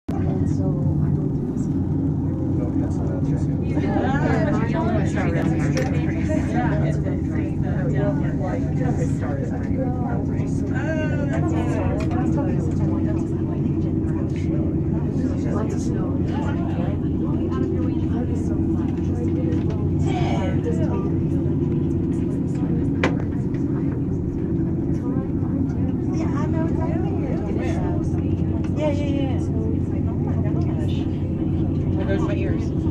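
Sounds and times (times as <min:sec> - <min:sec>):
cable car cabin humming: 0:00.1 - 0:32.9
people talking: 0:00.1 - 0:32.9.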